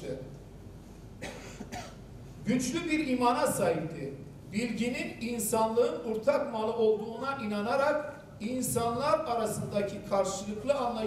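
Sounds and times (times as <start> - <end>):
person coughing: 1.2 - 2.0.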